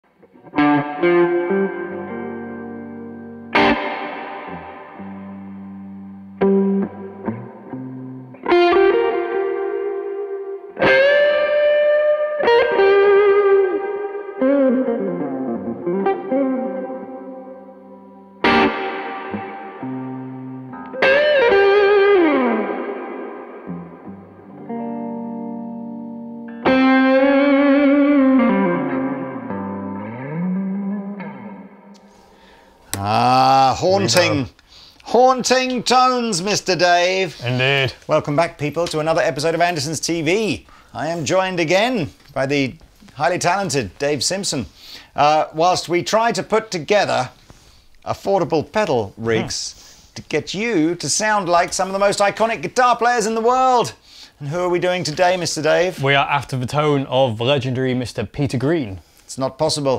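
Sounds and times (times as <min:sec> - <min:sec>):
electric guitar blues phrases: 0:00.2 - 0:57.6.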